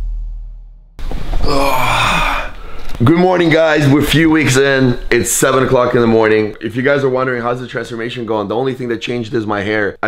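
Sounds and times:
deep bass music: 0:00.0 - 0:01.0
man groaning: 0:01.4 - 0:02.6.

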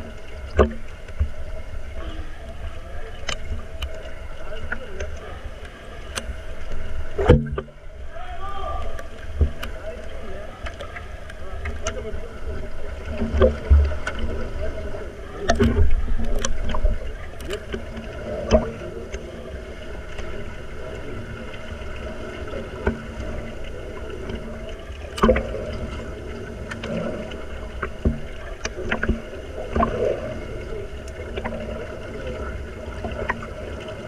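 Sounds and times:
underwater clicks and knocks: 0:00.0 - 0:07.9, 0:08.8 - 0:14.6, 0:15.4 - 0:19.3, 0:22.4 - 0:30.1, 0:31.0 - 0:32.1, 0:32.9 - 0:34.0
underwater rumble of moving water: 0:00.0 - 0:34.0.

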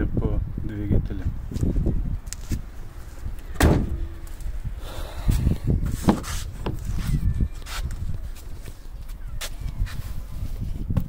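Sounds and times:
car door latch click: 0:03.6 - 0:04.2
car panel slamming shut: 0:03.6 - 0:04.2.

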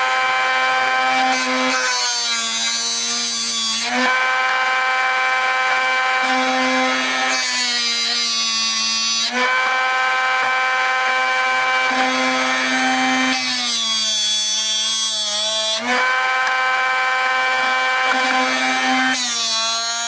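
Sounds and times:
drill bit sharpener motor hum: 0:00.0 - 0:20.0.

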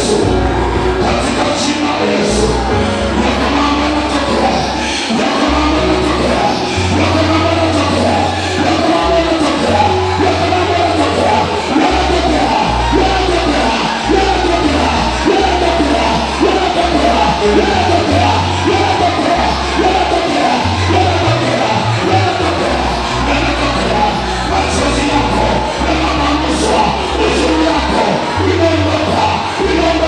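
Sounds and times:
bass line: 0:00.0 - 0:30.0
live worship music through speakers: 0:00.0 - 0:30.0
people singing and calling: 0:00.0 - 0:30.0.

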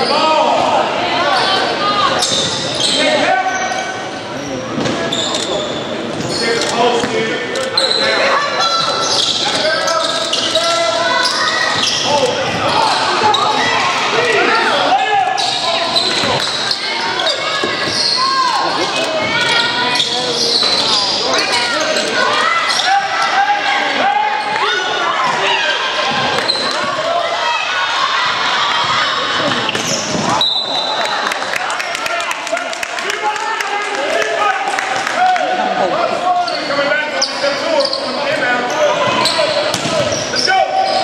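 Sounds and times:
voices calling out in a hall: 0:00.0 - 0:41.0.

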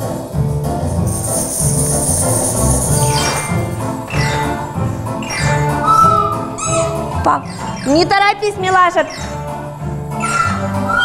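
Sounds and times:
hand percussion: 0:00.0 - 0:07.1
metallophone ensemble music: 0:00.8 - 0:11.0.

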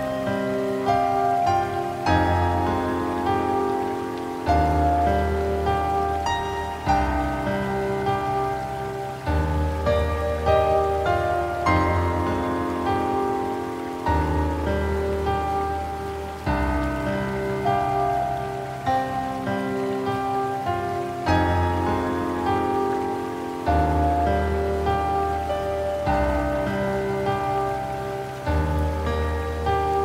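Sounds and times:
rain hissing: 0:00.0 - 0:30.0
slow piano music: 0:00.0 - 0:30.0.

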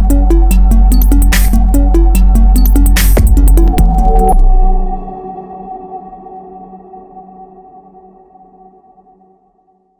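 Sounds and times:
electronic music held chord: 0:00.0 - 0:09.6.

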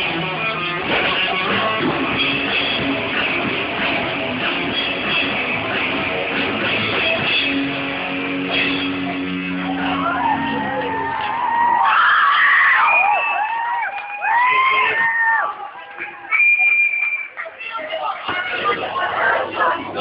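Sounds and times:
people shouting: 0:09.5 - 0:16.3.

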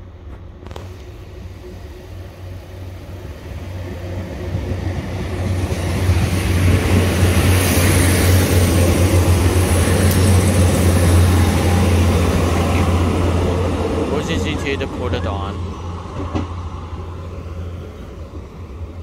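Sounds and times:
diesel train passing: 0:00.0 - 0:19.0.

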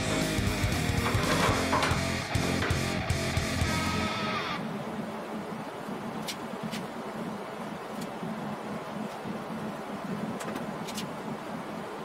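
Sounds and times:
guitar background music: 0:00.0 - 0:04.6
low workshop hum: 0:00.0 - 0:12.0.

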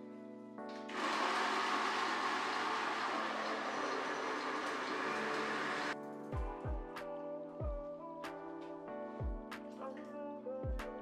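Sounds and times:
background music: 0:00.0 - 0:11.0
blender running: 0:00.9 - 0:06.0.

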